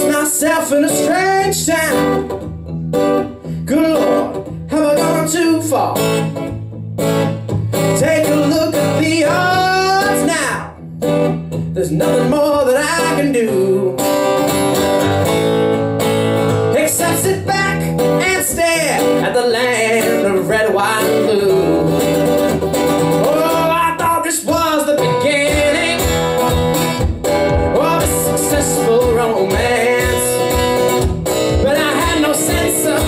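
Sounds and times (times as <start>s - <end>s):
man singing: 0.0s - 2.4s, 3.4s - 6.2s, 7.7s - 10.8s, 11.5s - 14.7s, 16.6s - 22.4s, 23.1s - 33.0s
acoustic guitar playing blues: 0.0s - 33.0s.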